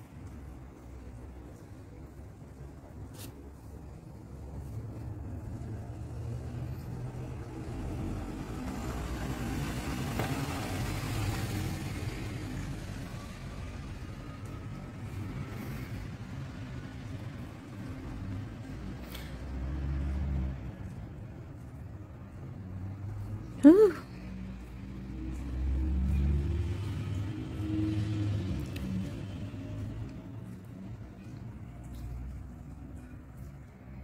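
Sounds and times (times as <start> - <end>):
motor vehicle passing: 4.5 - 34.0.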